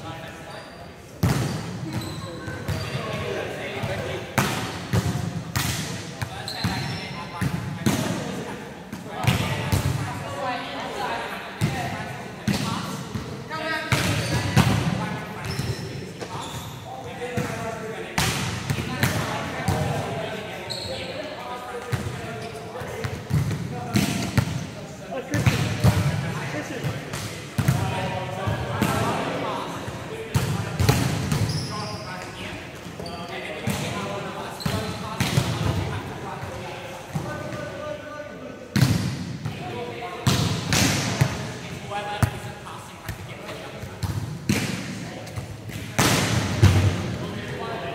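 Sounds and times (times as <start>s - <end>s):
volleyballs slapping court floor: 3.8s - 6.3s, 22.8s - 24.6s, 40.2s - 41.5s, 43.0s - 47.2s.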